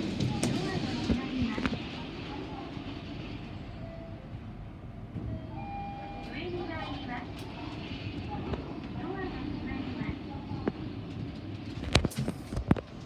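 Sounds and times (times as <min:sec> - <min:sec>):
elevator car rumbling: 0:00.0 - 0:13.0.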